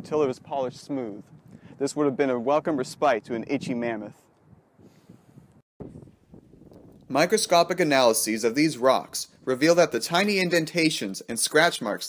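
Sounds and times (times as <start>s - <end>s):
wind buffeting microphone: 0.0s - 10.2s.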